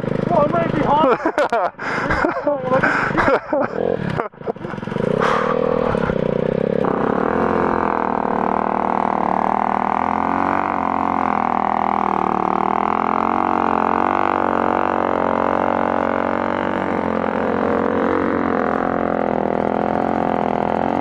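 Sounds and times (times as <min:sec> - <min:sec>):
motorcycle engine idling: 0:00.0 - 0:21.0.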